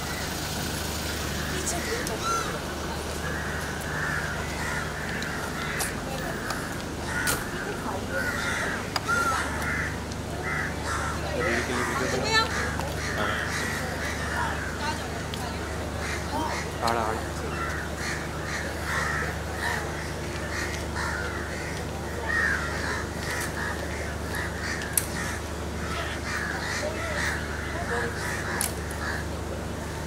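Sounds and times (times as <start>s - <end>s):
birds calling: 0.0s - 30.0s.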